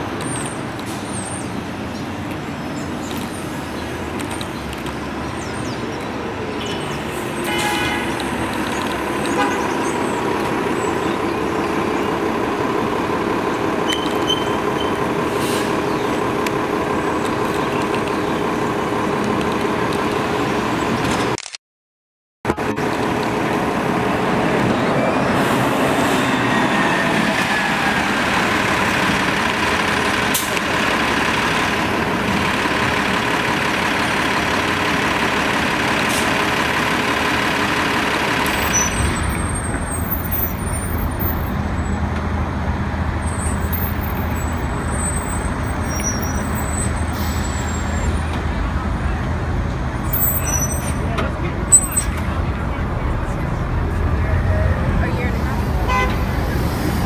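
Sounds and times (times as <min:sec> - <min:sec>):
bus engine low rumble: 0:00.0 - 0:21.4, 0:22.5 - 0:57.0
bus engine whine: 0:00.0 - 0:21.4, 0:22.5 - 0:57.0
city street traffic: 0:00.0 - 0:21.6, 0:22.4 - 0:57.0.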